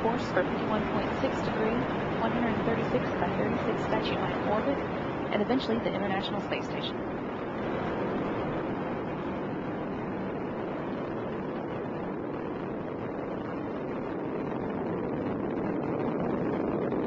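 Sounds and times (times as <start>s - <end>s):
rocket engines roaring: 0.0s - 17.0s.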